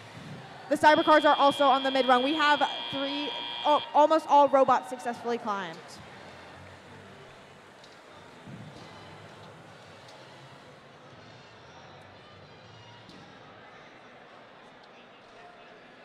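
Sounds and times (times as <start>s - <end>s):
distant crowd voices: 0.0s - 16.0s.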